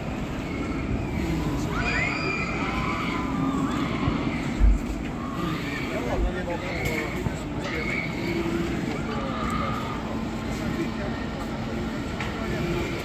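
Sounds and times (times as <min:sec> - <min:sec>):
babble of distant voices: 0:00.0 - 0:13.0.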